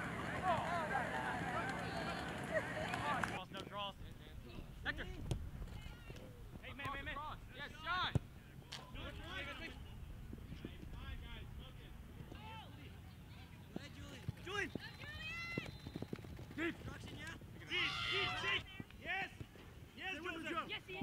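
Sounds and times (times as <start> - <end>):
players and spectators shouting: 0.0 - 3.4, 17.6 - 18.8.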